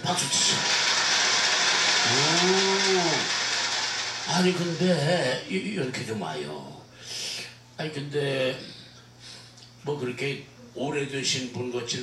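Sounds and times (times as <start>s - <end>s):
crowd applauding: 0.0s - 5.2s.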